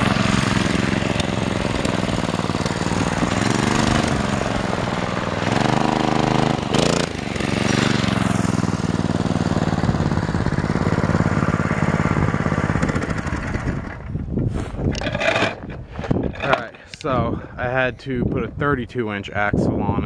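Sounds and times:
small engine revving: 0.0 - 14.2.

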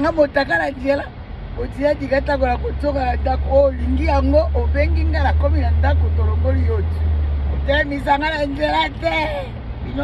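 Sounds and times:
car low hum: 0.0 - 10.0.

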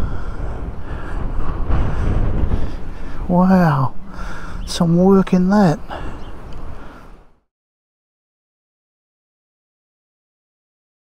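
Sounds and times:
wind buffeting microphone: 0.0 - 7.4.

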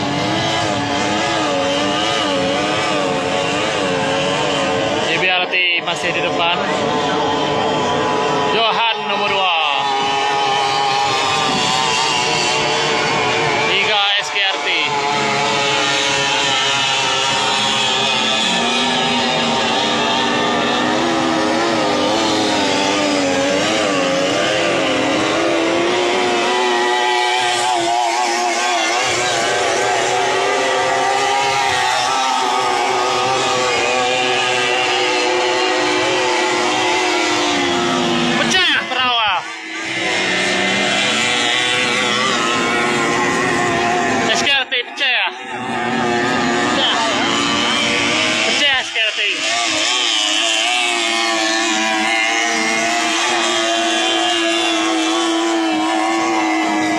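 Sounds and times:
boat passing close by: 0.0 - 56.9
racing outboard engines: 0.0 - 56.9.

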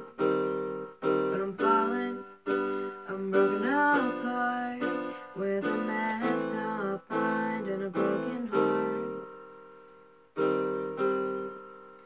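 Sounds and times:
electronic keyboard chords: 0.0 - 12.0
young woman singing: 1.0 - 9.4.

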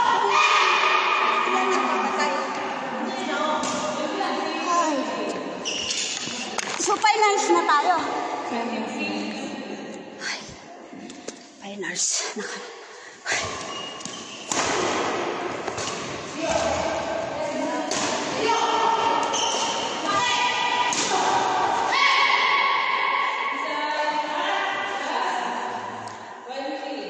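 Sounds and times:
rackets hitting shuttlecock: 13.4 - 21.8.

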